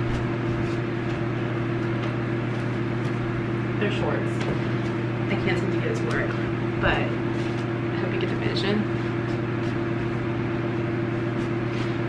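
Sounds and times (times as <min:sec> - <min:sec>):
machine humming: 0:00.0 - 0:12.0.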